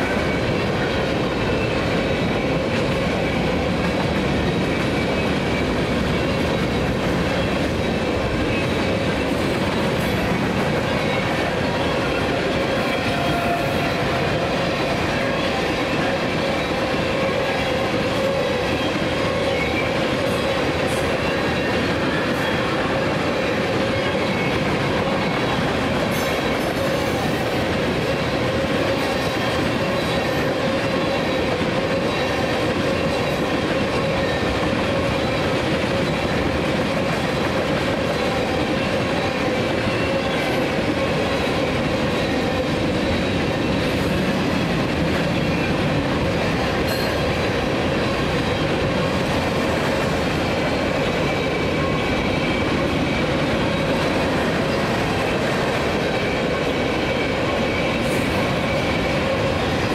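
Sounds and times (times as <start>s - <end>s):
freight train wheels on rails: 0.0s - 59.9s.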